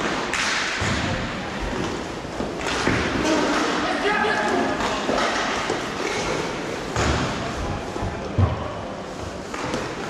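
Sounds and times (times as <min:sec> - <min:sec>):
hockey sticks and puck striking: 0:00.0 - 0:07.5, 0:09.4 - 0:10.0.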